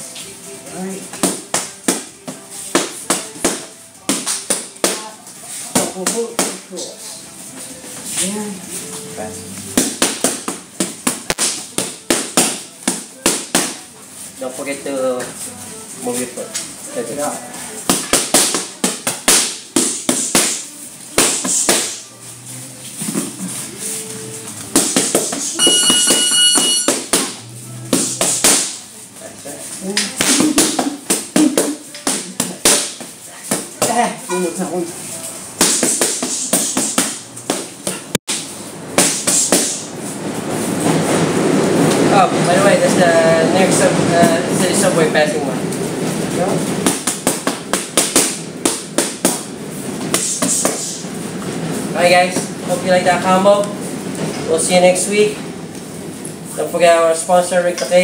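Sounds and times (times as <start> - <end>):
boxing gloves smacking mitts: 24.6 - 25.5, 35.6 - 39.8, 46.8 - 51.0
subway train rumble: 39.9 - 46.8.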